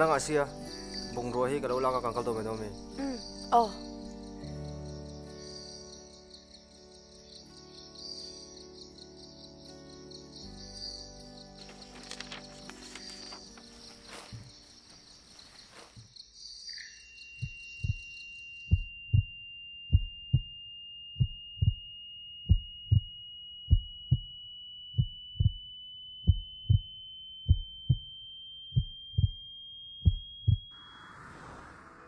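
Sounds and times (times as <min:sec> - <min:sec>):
thin high ringing tone: 0:12.0 - 0:32.0
heartbeat thumps: 0:17.4 - 0:18.1, 0:18.7 - 0:19.3, 0:19.9 - 0:20.5, 0:21.2 - 0:21.8, 0:22.5 - 0:23.1, 0:23.7 - 0:24.3, 0:25.0 - 0:26.9, 0:27.5 - 0:28.1, 0:28.7 - 0:29.4, 0:30.0 - 0:30.7.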